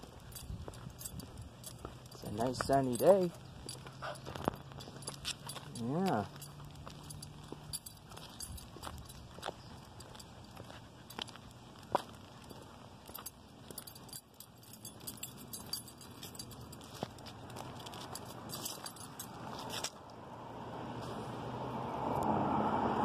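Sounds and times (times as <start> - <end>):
dog harness jingling: 0.0 - 20.0
footsteps on concrete: 0.0 - 20.2
passing traffic: 0.0 - 23.0.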